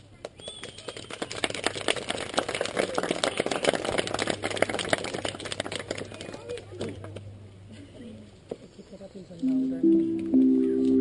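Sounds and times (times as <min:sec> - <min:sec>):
many hands clapping: 0:00.2 - 0:07.2.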